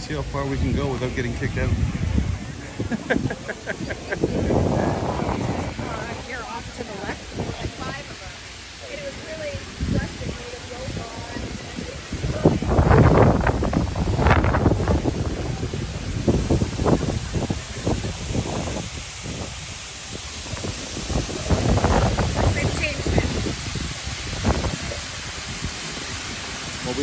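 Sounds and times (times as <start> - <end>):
people talking: 0.0 - 19.0, 20.1 - 23.6, 24.2 - 27.0
wind hiss on microphone: 0.0 - 27.0.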